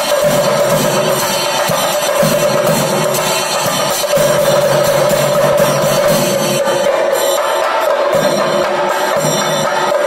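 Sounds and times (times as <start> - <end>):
drums beaten in fast rhythm: 0.0 - 10.0.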